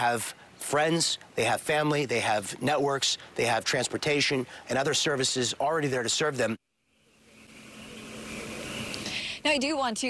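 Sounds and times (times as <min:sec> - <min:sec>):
vehicle road noise: 0:06.9 - 0:09.8.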